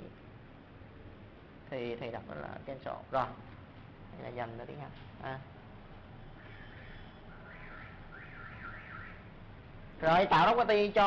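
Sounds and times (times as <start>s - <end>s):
high warbling alarm tone: 6.4s - 9.3s.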